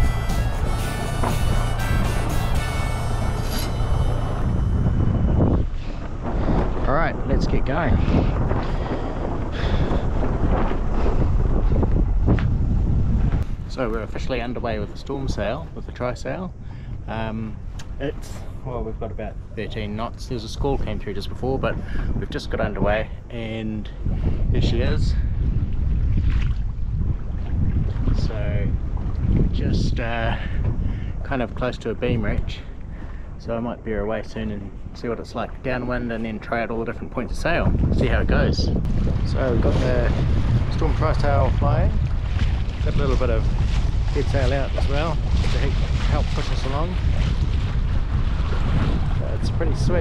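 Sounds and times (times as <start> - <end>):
rush of sea: 0.0 - 50.0
wind buffeting microphone: 0.0 - 50.0.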